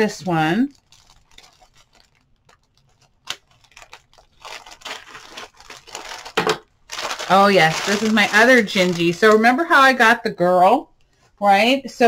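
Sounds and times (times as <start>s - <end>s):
plastic mailer bag crinkling: 0.3s - 9.6s
plastic bag ripping: 0.6s - 9.4s.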